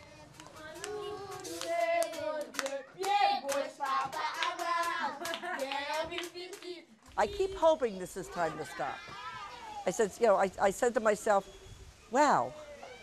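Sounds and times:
children singing: 0:00.0 - 0:06.0
children clapping: 0:00.3 - 0:06.8.

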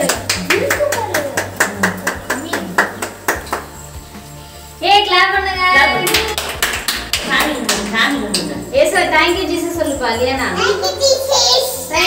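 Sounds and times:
voices: 0:00.0 - 0:03.8, 0:04.8 - 0:06.5, 0:07.2 - 0:12.0
people clapping in rhythm: 0:00.0 - 0:04.2, 0:05.9 - 0:08.7.

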